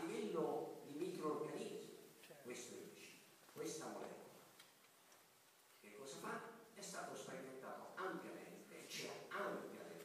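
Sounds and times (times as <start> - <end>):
man talking: 0.0 - 4.4, 5.8 - 10.0.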